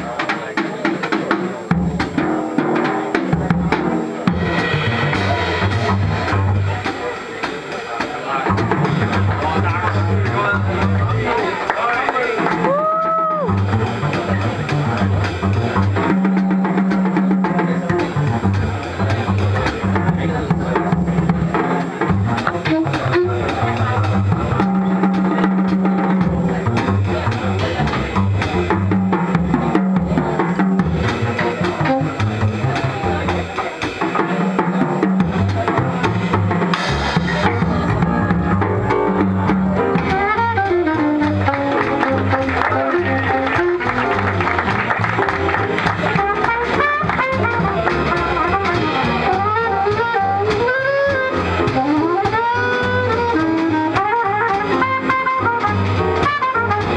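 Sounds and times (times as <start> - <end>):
double bass: 0.0 - 56.9
drum kit: 0.0 - 56.9
saxophone: 21.7 - 29.2, 30.8 - 33.6, 35.5 - 56.9.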